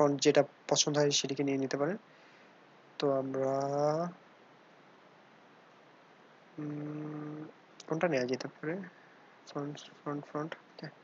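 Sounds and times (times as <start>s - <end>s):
faint steady hiss: 0.0s - 11.0s
man speaking hesitantly: 6.6s - 8.9s.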